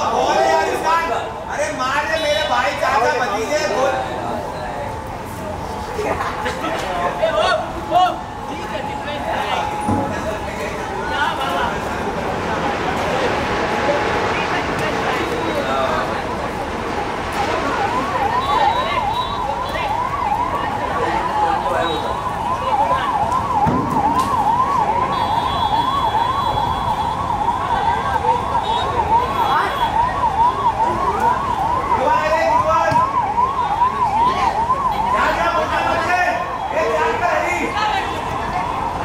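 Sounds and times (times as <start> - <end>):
siren yelping: 2.7 - 11.9, 14.9 - 39.0.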